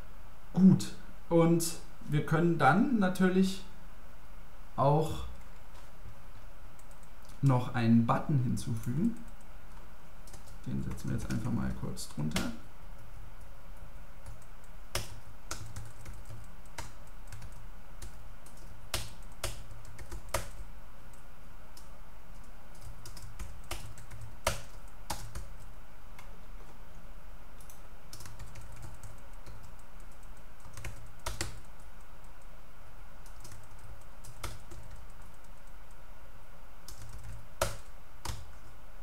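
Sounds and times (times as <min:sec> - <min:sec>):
low steady hum: 0:00.0 - 0:39.0
typing on a keyboard: 0:10.3 - 0:11.5, 0:14.2 - 0:20.6, 0:22.4 - 0:25.7, 0:27.6 - 0:32.4, 0:33.3 - 0:35.8, 0:36.9 - 0:38.5.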